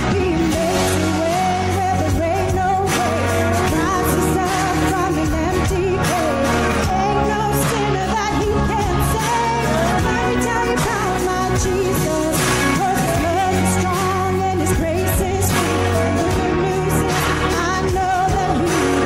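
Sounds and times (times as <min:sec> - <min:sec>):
instrumental accompaniment with beat: 0:00.0 - 0:19.0
woman singing with vibrato: 0:00.0 - 0:19.0.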